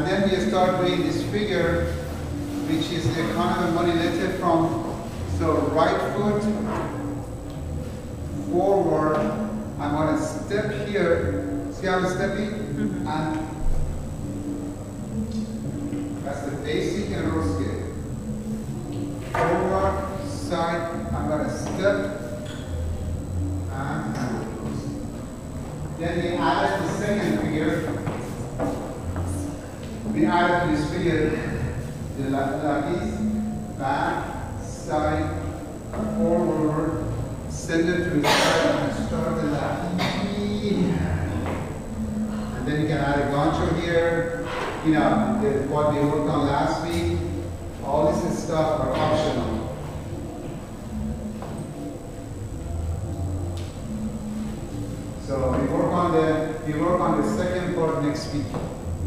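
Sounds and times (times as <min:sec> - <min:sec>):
faint low held tones: 0:00.0 - 0:59.0
person talking: 0:08.5 - 0:13.7, 0:26.0 - 0:28.4.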